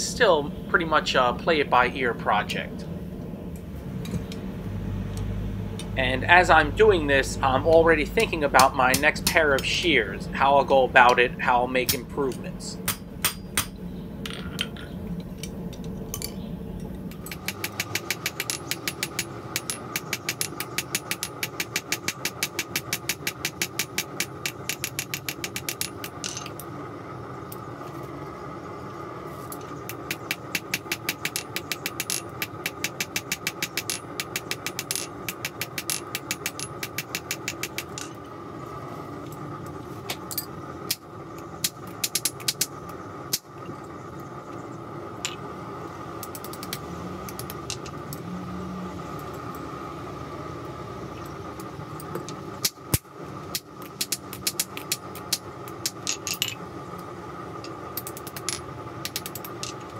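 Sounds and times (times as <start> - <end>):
steady machine hum: 0.0 - 59.9
hammer striking steel on anvil: 11.8 - 13.8.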